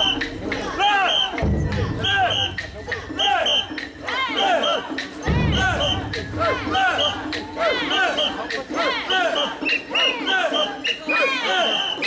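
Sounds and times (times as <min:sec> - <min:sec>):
crowd chanting in rhythm: 0:00.0 - 0:12.0.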